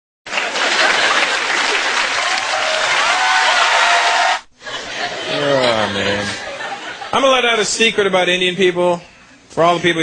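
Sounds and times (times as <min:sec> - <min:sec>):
audience applauding: 0:00.3 - 0:04.5.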